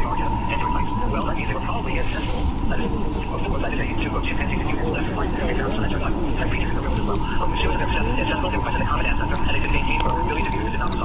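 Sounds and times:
low rumble: 0.0s - 11.0s
muffled speech: 0.0s - 11.0s
thin steady whine: 0.0s - 11.0s.

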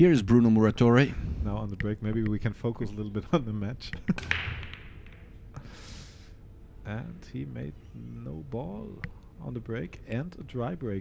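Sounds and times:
billiard balls clicking together: 3.8s - 5.5s
cue ball cracking into rack: 4.2s - 5.4s.

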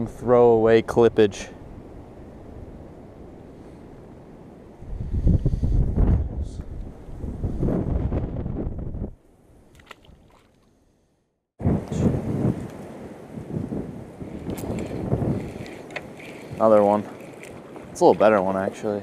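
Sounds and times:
wind buffeting microphone: 1.1s - 9.2s, 11.6s - 19.0s.

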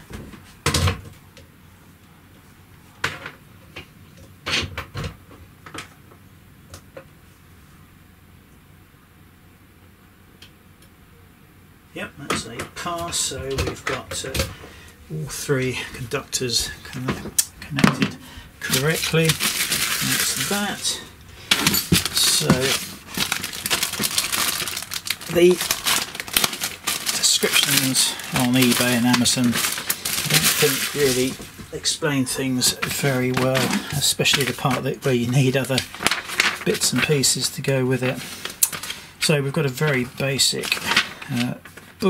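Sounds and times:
plastic packaging crinkling: 15.4s - 42.0s.

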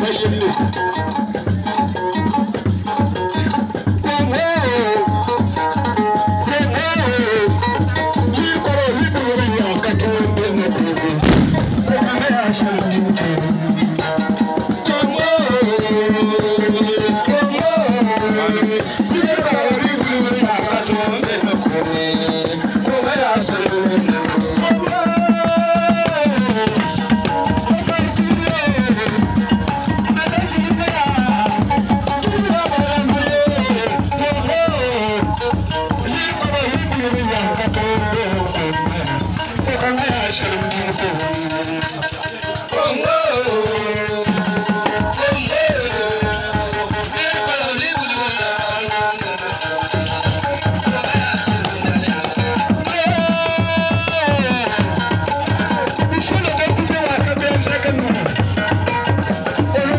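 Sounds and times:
calabash hand drumming: 2.1s - 14.6s
person singing: 6.4s - 58.3s.

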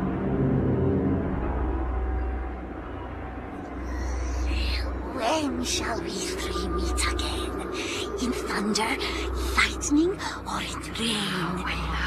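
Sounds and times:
low rumbling drone: 0.0s - 12.0s.

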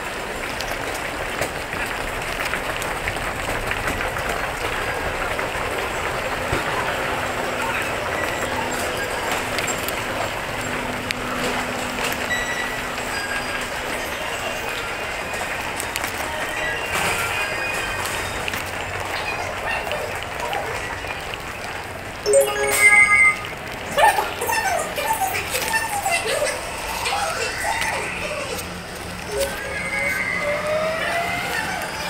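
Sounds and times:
crowd footsteps and bustle: 0.0s - 32.0s
electronic multi-tone chime: 22.3s - 24.0s
pitched voice-like sounds: 22.3s - 32.0s.

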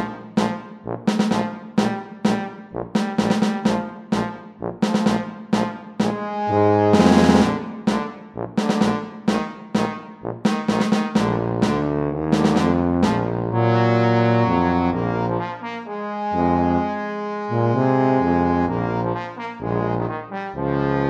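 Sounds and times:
brass ensemble chords: 0.0s - 21.0s.

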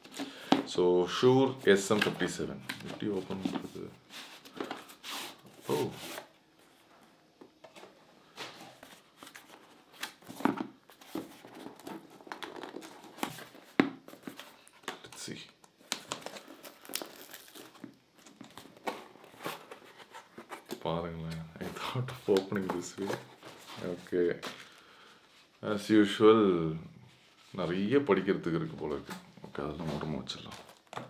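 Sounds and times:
cardboard packaging rustling: 8.6s - 20.8s.

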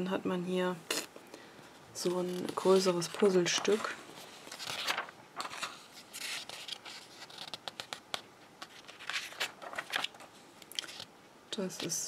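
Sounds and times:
catalogue pages turning: 2.0s - 11.1s.

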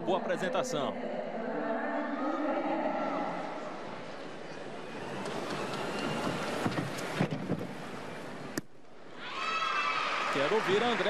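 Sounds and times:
crowd hubbub: 3.1s - 8.4s
crowd cheering: 4.6s - 7.2s, 9.1s - 11.0s.

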